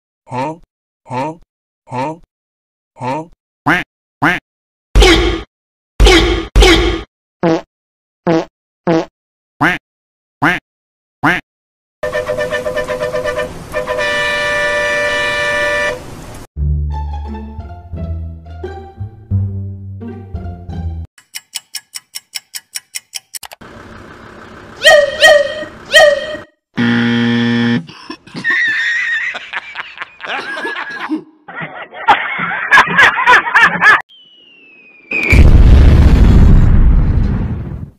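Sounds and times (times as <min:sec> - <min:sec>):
man chuckling: 0:27.8 - 0:34.0.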